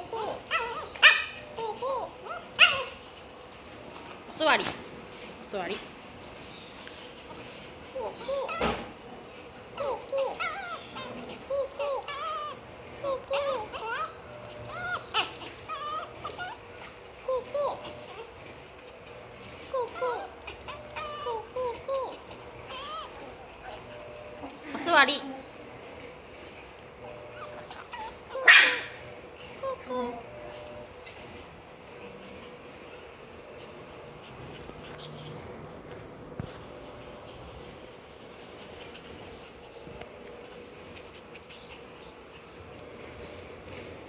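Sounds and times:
dog whimpering: 0.0s - 3.2s, 7.8s - 19.0s, 19.6s - 25.5s, 27.0s - 30.9s
small dog barking: 0.5s - 1.5s, 2.3s - 3.0s, 27.3s - 29.0s.

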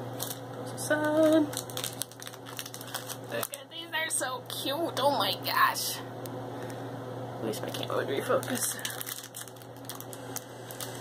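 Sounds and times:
plastic packaging crinkling: 0.1s - 3.6s, 7.6s - 11.0s.

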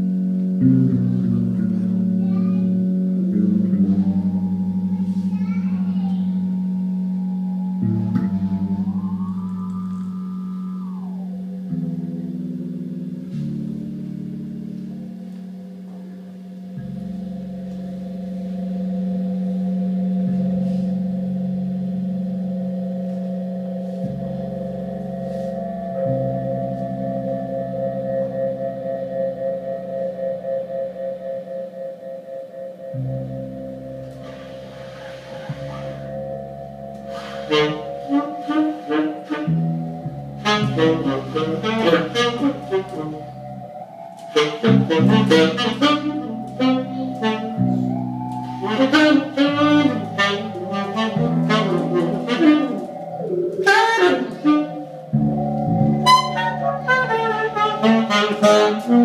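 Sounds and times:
saxophone: 0.0s - 29.3s, 32.8s - 59.0s
fretless electric bass: 0.0s - 59.0s
keyboard drone tones: 0.0s - 59.0s
soft breathy hiss: 34.0s - 39.2s.

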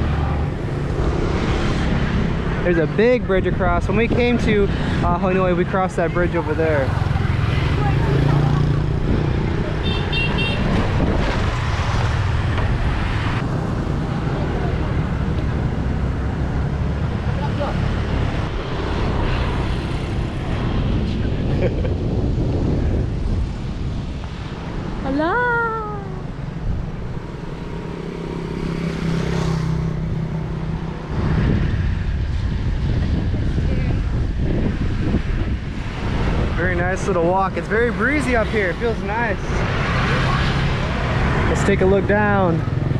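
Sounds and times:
motor scooters passing: 0.0s - 3.1s, 4.0s - 42.9s
wind rumble on microphone: 0.0s - 27.6s, 28.6s - 42.9s.

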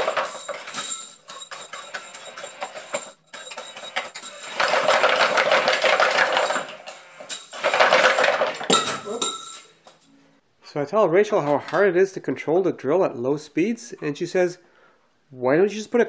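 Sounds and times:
electric drill motor rattling: 0.0s - 6.9s
metal slinky clinking: 0.0s - 9.8s.

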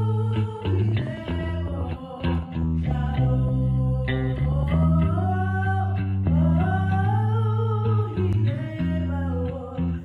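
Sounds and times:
girl singing into a microphone: 0.0s - 10.0s
guitar and bass accompaniment: 0.0s - 10.0s.

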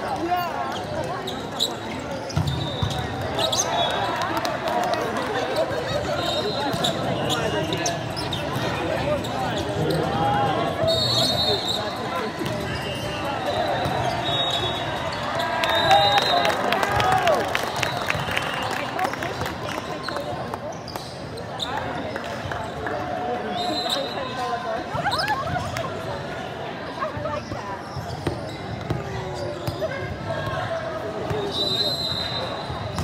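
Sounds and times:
crowd chatter: 0.0s - 33.0s.

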